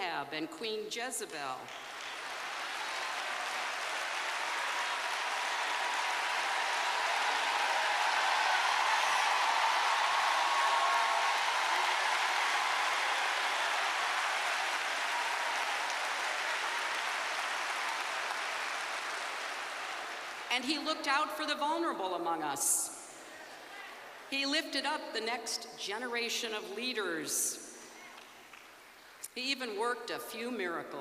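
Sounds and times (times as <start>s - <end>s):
large audience applauding: 1.7s - 20.5s.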